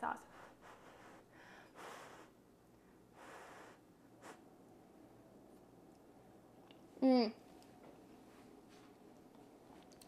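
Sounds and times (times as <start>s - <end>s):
faint breaths: 0.2s - 4.4s.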